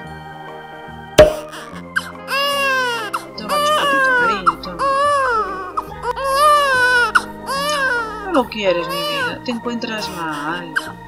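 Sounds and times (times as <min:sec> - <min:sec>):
background music: 0:00.0 - 0:11.0
baby crying: 0:01.5 - 0:09.4, 0:10.0 - 0:11.0.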